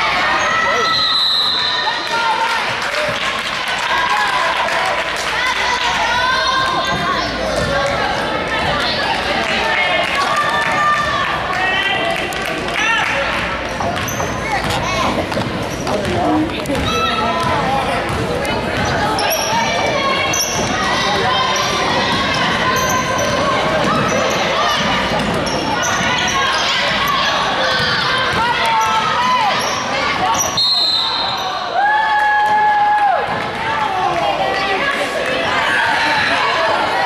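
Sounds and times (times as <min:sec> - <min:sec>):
voices of players and spectators: 0:00.0 - 0:37.0.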